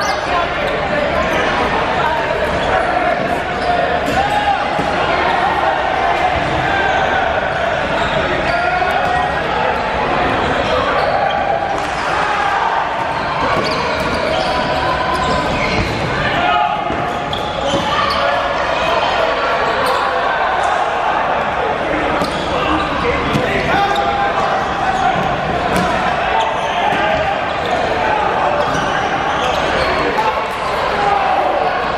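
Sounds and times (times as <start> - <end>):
players shouting: 0.0 - 31.9.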